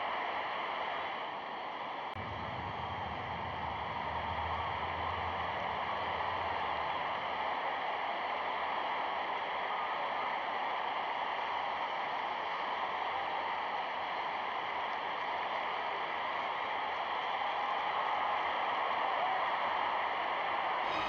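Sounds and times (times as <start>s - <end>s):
film soundtrack hiss: 0.0s - 21.0s.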